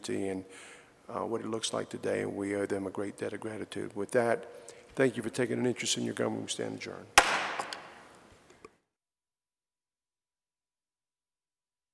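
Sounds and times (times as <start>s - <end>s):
wooden gavel strike echoing: 7.2s - 8.1s.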